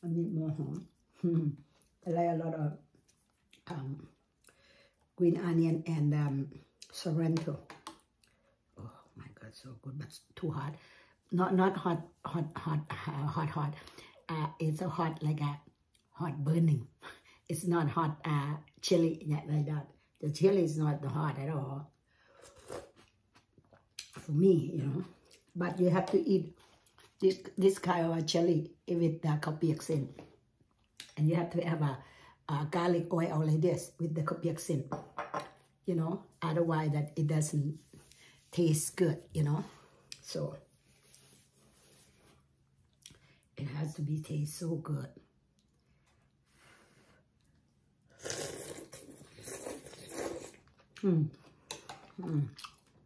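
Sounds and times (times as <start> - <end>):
person chewing food: 47.3 - 53.0
person slurping noodles: 48.1 - 50.7.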